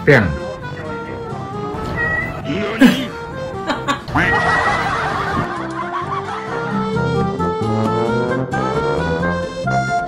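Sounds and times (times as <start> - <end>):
background music: 0.0 - 10.0
people laughing: 2.7 - 7.1.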